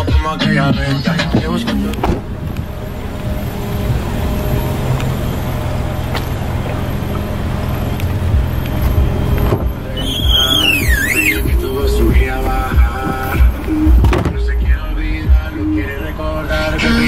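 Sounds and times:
car engine idling: 0:00.0 - 0:17.0.

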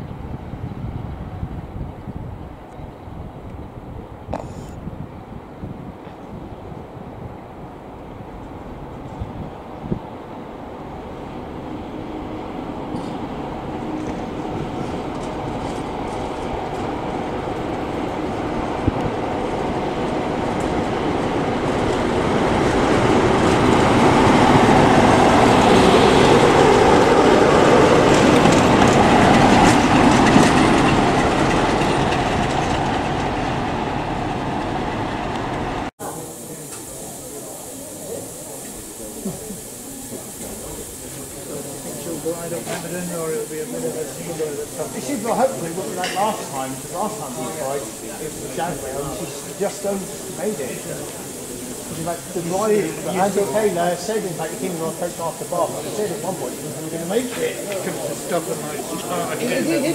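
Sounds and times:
diesel locomotive passing: 0:00.0 - 0:04.2, 0:05.0 - 0:59.9
train wheels on rails: 0:04.3 - 0:59.9
steam locomotive hissing: 0:04.4 - 0:59.9.

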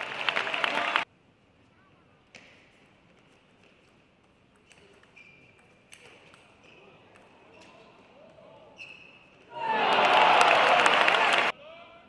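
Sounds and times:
faint hall background: 0:00.0 - 0:12.0.

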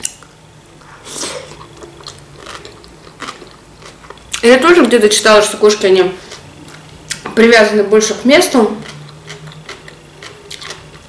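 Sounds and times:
person chewing salad: 0:00.0 - 0:04.5, 0:06.2 - 0:07.3, 0:08.7 - 0:11.0.

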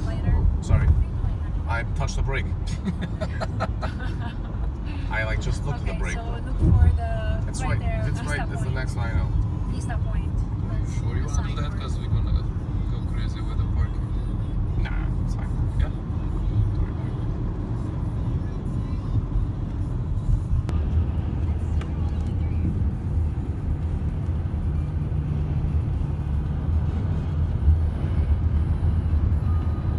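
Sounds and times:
car engine and tyre rumble: 0:00.0 - 0:29.9.

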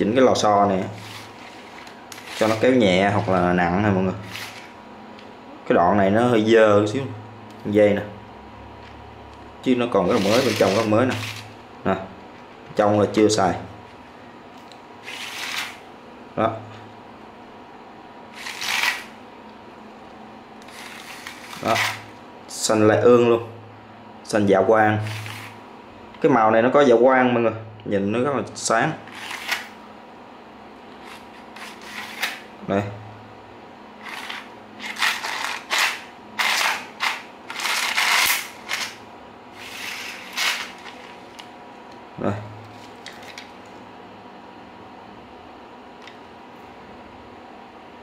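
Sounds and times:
hands rustling string: 0:00.8 - 0:03.4, 0:39.6 - 0:41.4.

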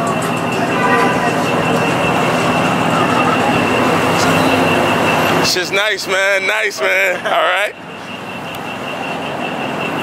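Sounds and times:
car engines droning: 0:00.0 - 0:10.0.

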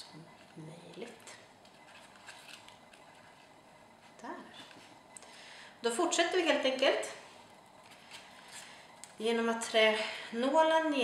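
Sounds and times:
paper rustling: 0:01.6 - 0:03.6.

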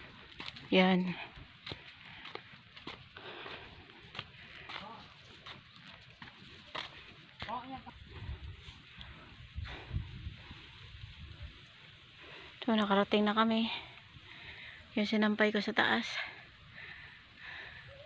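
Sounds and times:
faint footsteps: 0:00.0 - 0:09.9
wind bumps on microphone: 0:08.0 - 0:11.6.

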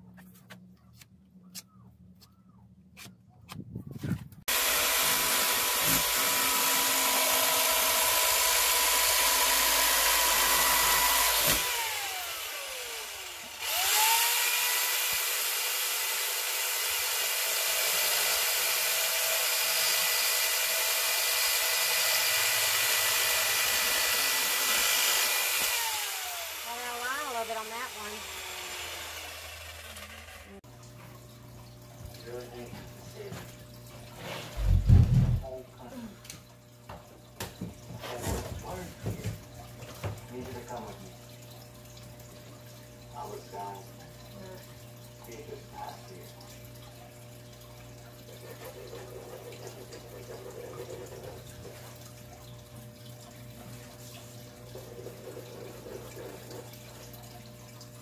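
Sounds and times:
jigsaw cutting: 0:04.5 - 0:30.6.

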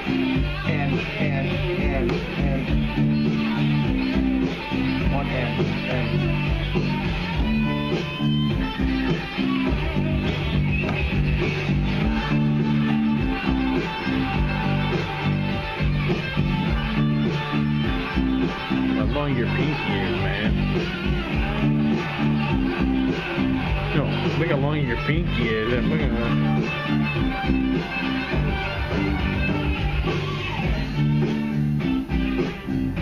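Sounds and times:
electric bass line: 0:00.0 - 0:33.0
music with a beat: 0:00.0 - 0:33.0.

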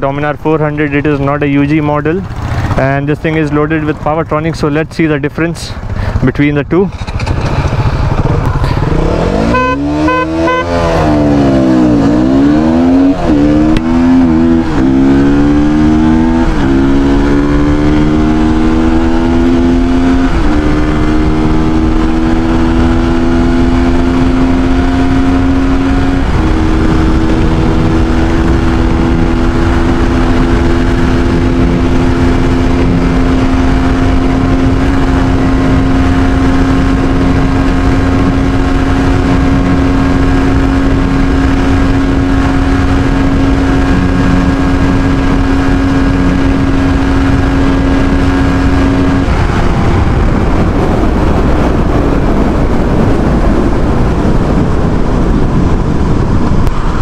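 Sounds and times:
motorcycle engine accelerating: 0:00.0 - 0:57.0
wind rushing over microphone: 0:00.0 - 0:57.0.

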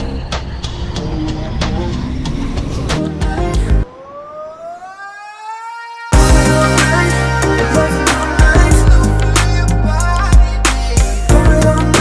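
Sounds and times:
rising siren-like wail: 0:03.6 - 0:07.0.

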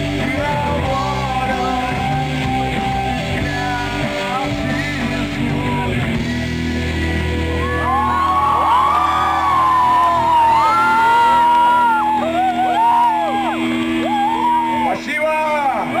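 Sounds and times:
rock band held chord: 0:00.0 - 0:16.0
audience whooping and shouting: 0:07.5 - 0:15.0.

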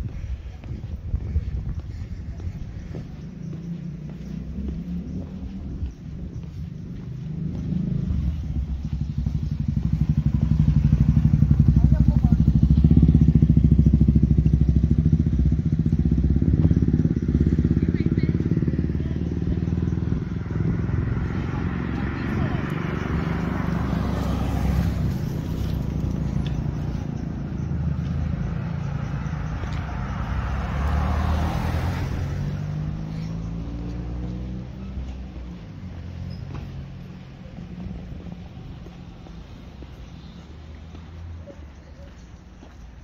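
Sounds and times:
vehicle engine pulsing: 0:00.0 - 0:42.9.

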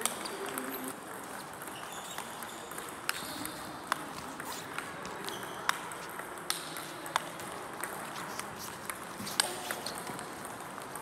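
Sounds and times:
table tennis ball hits: 0:00.0 - 0:11.0.

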